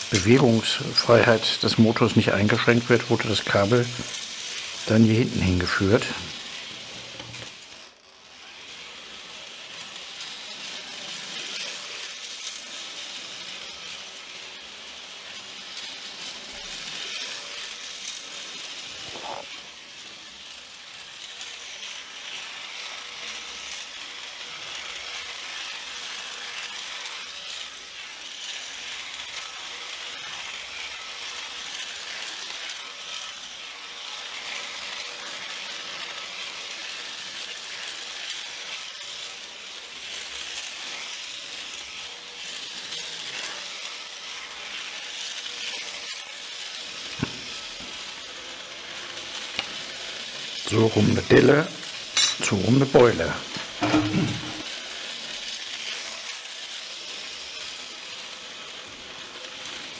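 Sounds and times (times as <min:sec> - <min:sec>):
steady hiss: 0:00.0 - 0:59.9.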